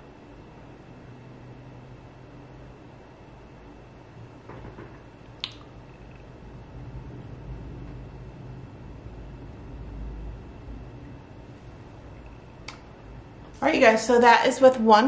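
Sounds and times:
low rumble: 5.8s - 14.3s.

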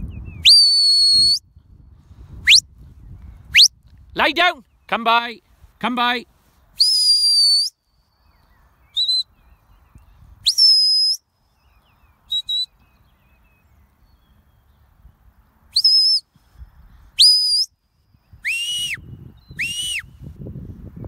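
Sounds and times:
sharp high whistle blasts: 0.4s - 1.5s, 2.4s - 2.7s, 3.5s - 3.8s, 6.8s - 7.8s, 8.9s - 9.3s, 10.4s - 11.2s, 12.3s - 12.8s, 15.7s - 16.3s, 17.2s - 17.7s, 18.4s - 20.2s.

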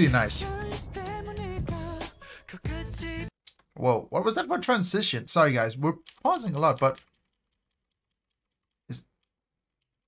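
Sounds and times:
rapid computer clicking: 5.8s - 10.0s.

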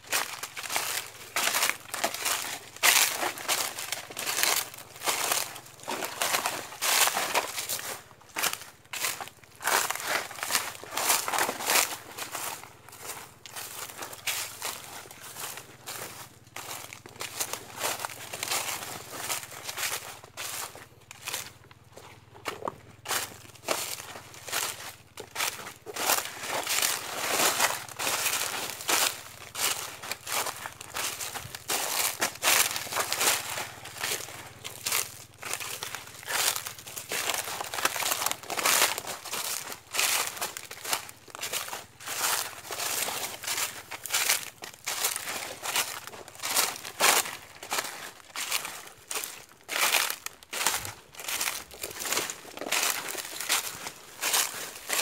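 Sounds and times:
footsteps crunching dry leaves: 0.0s - 55.0s.

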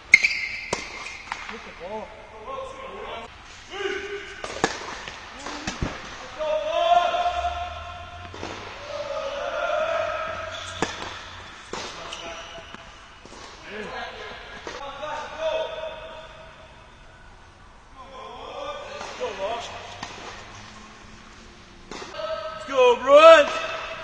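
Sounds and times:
ball bouncing on hard court: 0.1s - 1.6s, 4.4s - 6.2s, 10.5s - 13.6s
tennis ball hit by racquet: 0.1s - 1.7s, 4.3s - 6.4s, 8.2s - 13.6s, 18.9s - 20.7s, 21.8s - 22.2s
people's voices: 5.3s - 12.8s.

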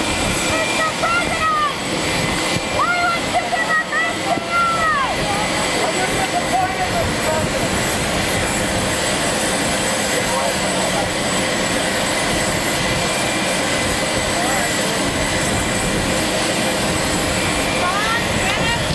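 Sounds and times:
jet engines rushing: 0.0s - 18.9s.

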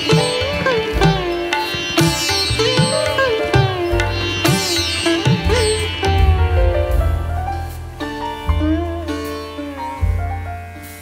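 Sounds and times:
low beats: 0.0s - 11.0s
plucked string instrument melody: 0.0s - 11.0s.

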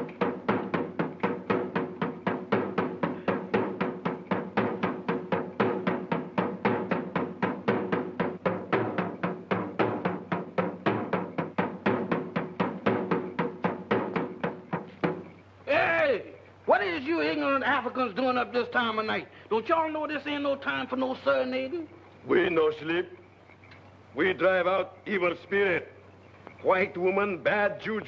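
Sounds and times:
hand drums beaten fast: 0.0s - 15.4s.

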